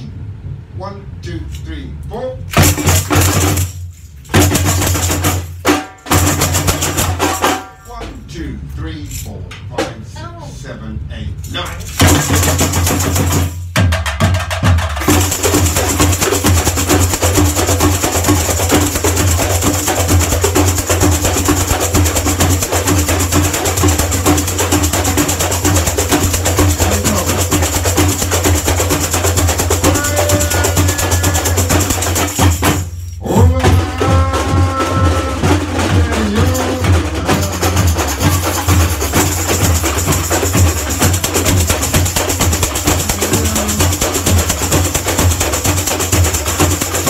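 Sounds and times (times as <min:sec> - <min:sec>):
shakers and tamborims: 0:02.4 - 0:08.4, 0:11.4 - 0:47.0
steady low drum beat: 0:02.6 - 0:08.3, 0:11.9 - 0:47.0
person singing: 0:26.7 - 0:27.5, 0:29.8 - 0:32.0, 0:33.2 - 0:38.6, 0:42.9 - 0:44.7.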